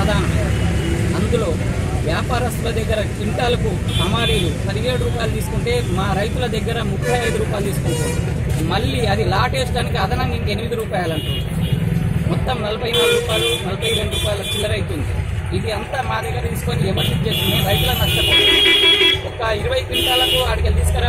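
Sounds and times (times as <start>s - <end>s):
vehicle horns honking: 3.9s - 4.6s, 7.0s - 8.4s, 11.0s - 11.8s, 12.9s - 14.8s, 17.0s - 20.6s.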